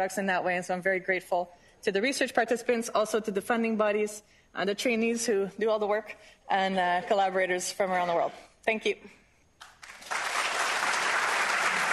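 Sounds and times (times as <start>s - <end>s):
audience applause: 9.7s - 11.9s.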